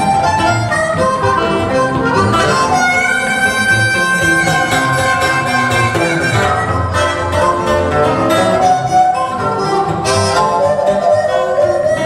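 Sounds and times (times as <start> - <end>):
acoustic guitar strummed: 0.0 - 12.0
harmonica holding sliding notes: 0.0 - 12.0.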